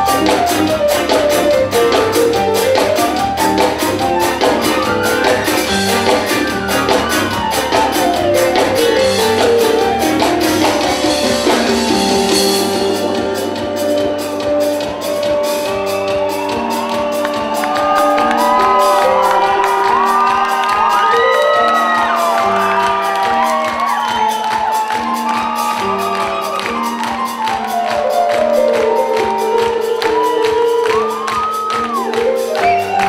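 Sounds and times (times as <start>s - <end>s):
fast drum beat: 0.0s - 33.0s.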